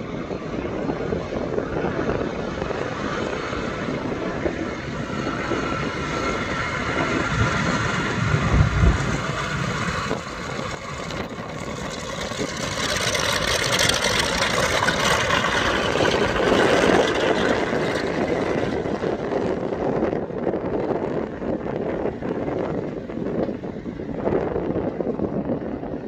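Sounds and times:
propeller airliner engines running: 0.0s - 26.0s.

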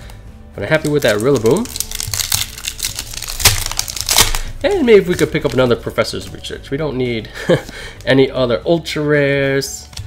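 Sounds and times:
foil wrapper crinkling and tearing: 0.7s - 5.9s.

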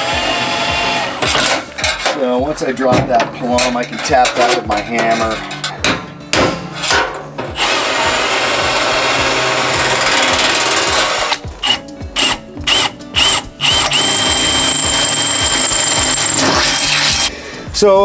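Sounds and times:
cordless drill boring through metal: 0.0s - 1.4s, 7.5s - 17.3s.

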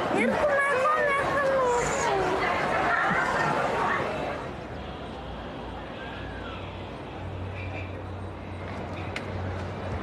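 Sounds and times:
people talking: 0.0s - 4.4s.

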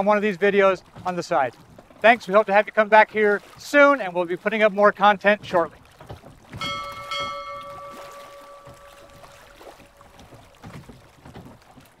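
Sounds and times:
water: 0.0s - 12.0s
wind: 0.0s - 12.0s
chime ringing: 6.6s - 10.4s.

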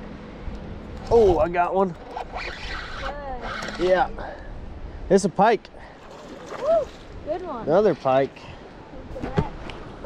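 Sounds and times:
fishing reel whirring: 2.0s - 4.0s.

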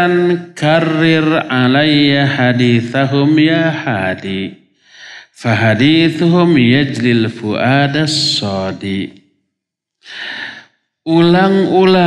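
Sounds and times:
man breathing in: 4.8s - 5.4s, 10.0s - 10.7s.

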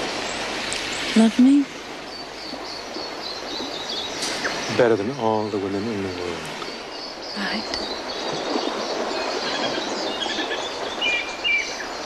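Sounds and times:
outdoor ambience hiss: 0.0s - 12.0s.

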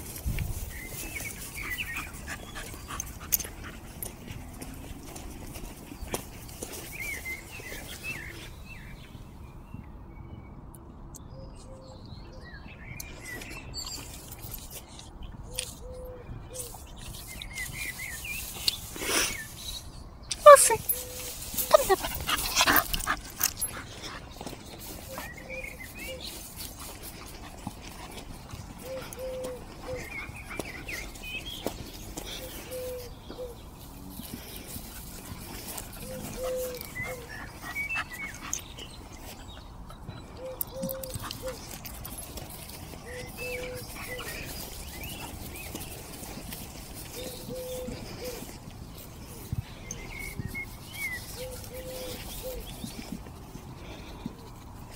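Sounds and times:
brushing through long grass: 0.0s - 2.9s, 16.6s - 28.5s, 41.5s - 53.6s
dog whimpering: 21.6s - 22.8s
dove cooing: 28.8s - 30.2s, 32.4s - 33.6s, 36.0s - 37.5s, 40.4s - 41.7s, 43.0s - 45.1s, 47.0s - 48.6s, 51.4s - 52.8s.

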